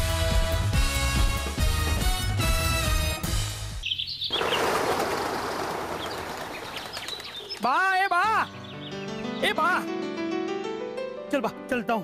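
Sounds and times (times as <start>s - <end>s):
outdoor dawn ambience: 3.3s - 9.8s
birds chirping: 3.7s - 9.8s.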